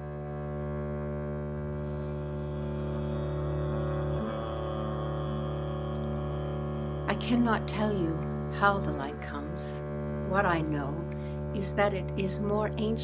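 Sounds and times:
bowed double bass drone: 0.0s - 13.0s.

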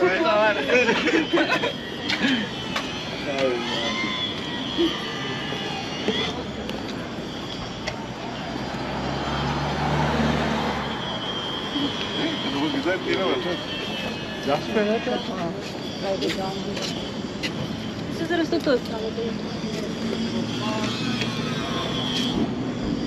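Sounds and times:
passersby voices: 0.0s - 23.0s
passing vehicle engine hum: 0.0s - 23.0s.

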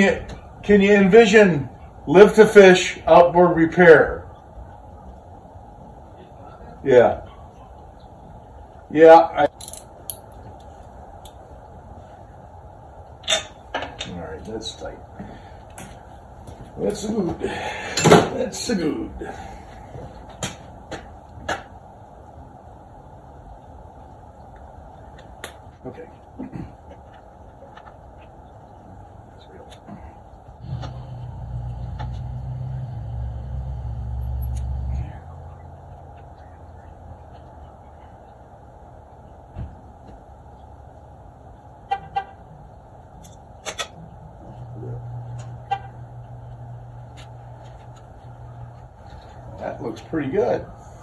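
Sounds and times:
constant low hum: 0.0s - 51.0s
low vehicle drone: 0.0s - 51.0s.

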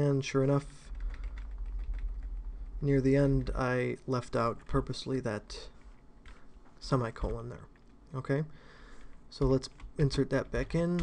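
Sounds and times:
low hum: 0.6s - 6.4s
computer keyboard typing: 0.8s - 3.6s, 8.9s - 11.0s.

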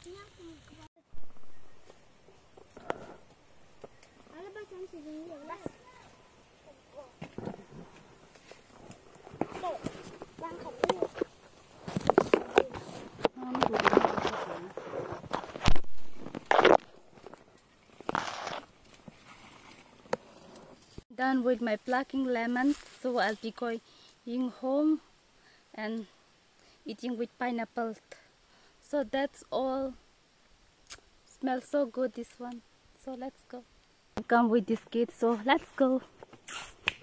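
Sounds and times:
leaves and twigs rustling: 0.0s - 27.9s
twig snapping: 30.8s - 31.1s.

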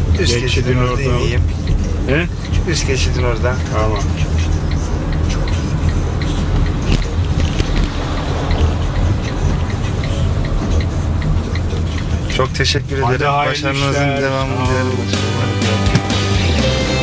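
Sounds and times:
turn signal clicking: 0.0s - 13.3s
engine and road rumble: 0.0s - 17.0s.

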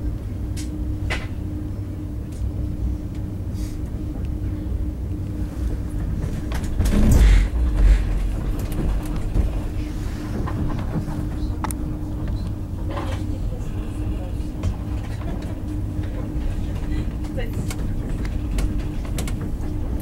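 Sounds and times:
train rumble: 0.0s - 20.0s.

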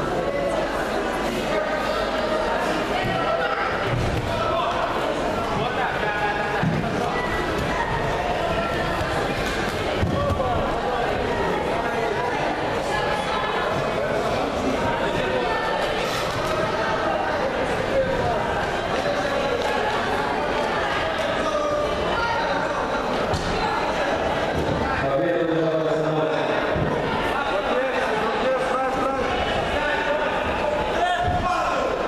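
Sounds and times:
murmur of voices: 0.0s - 32.0s.

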